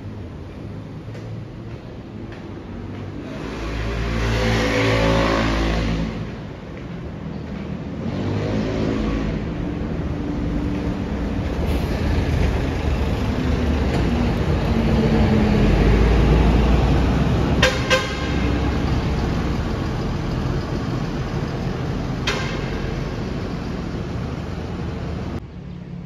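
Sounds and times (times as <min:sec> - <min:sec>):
road traffic: 0:00.0 - 0:26.0
bus engine rumble passing: 0:09.0 - 0:26.0
vehicle horn toots: 0:17.6 - 0:18.5, 0:22.2 - 0:23.0.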